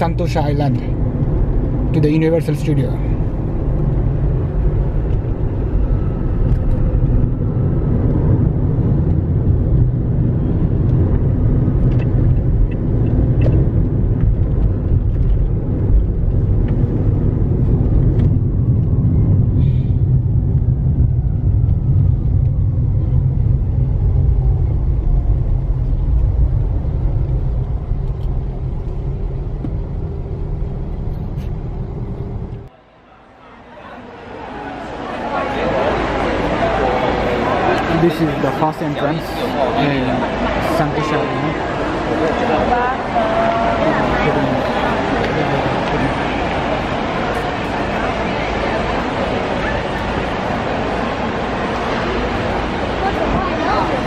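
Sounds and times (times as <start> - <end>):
car engine rumble: 0.0 - 54.0
tyres on road: 0.0 - 54.0.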